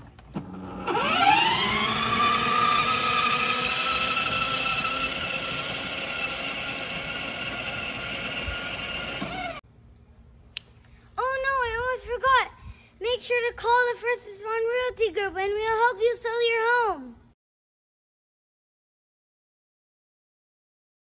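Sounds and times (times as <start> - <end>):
toy motorcycle motor whining: 0.4 - 9.6.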